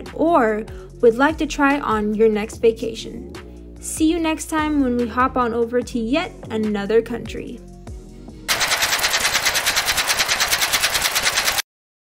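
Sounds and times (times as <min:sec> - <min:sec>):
rapid wind flutter rattle: 0:08.5 - 0:11.7.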